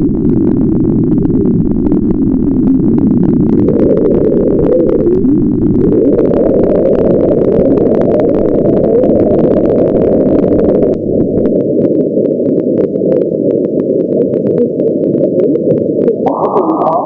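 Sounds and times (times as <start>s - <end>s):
radio receiver hiss: 0.0s - 17.0s
static crackles: 0.0s - 17.0s.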